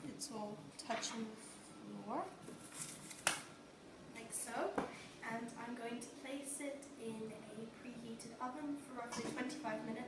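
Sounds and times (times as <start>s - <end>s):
young woman speaking: 0.0s - 2.4s, 4.1s - 10.0s.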